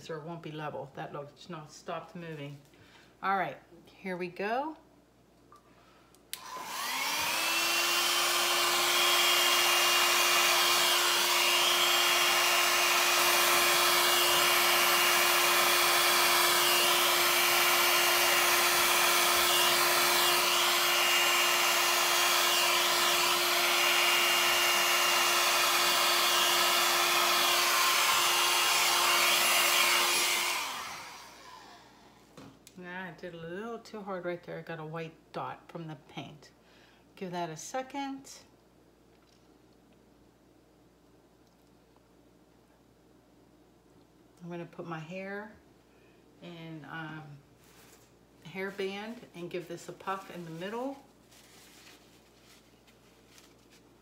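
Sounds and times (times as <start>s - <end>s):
hair dryer blowing: 6.3s - 32.3s, 48.6s - 51.1s.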